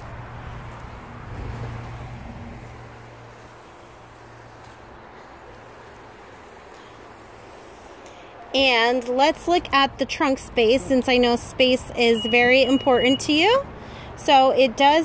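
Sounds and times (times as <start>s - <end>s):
outdoor background noise: 0.0s - 15.0s.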